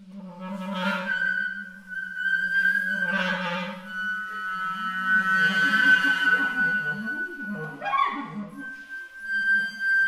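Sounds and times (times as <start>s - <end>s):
flute high held tone: 0.0s - 10.0s
low wavering clarinet note: 0.0s - 10.0s.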